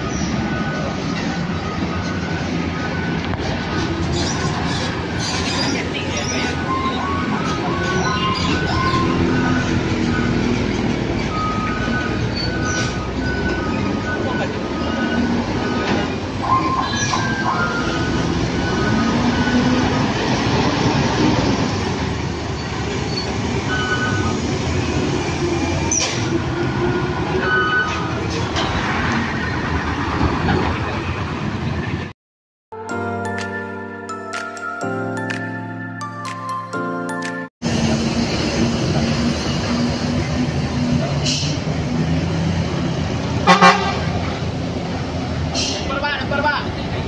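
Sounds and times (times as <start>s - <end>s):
diesel engines in heavy traffic: 0.0s - 32.2s, 37.6s - 47.0s.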